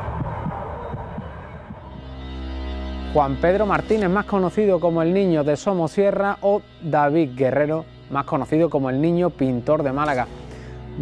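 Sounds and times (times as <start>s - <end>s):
low throbbing pulse: 0.0s - 11.0s.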